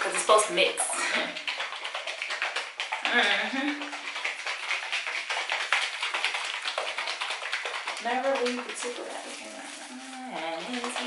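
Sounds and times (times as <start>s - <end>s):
plastic bottle being shaken: 0.0s - 11.0s.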